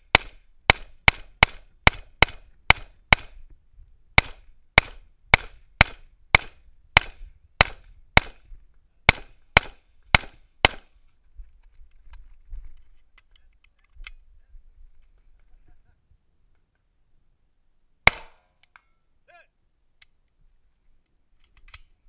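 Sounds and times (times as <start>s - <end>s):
rifle shots: 0.1s - 3.4s, 4.2s - 8.4s, 9.1s - 10.9s, 18.1s - 18.4s.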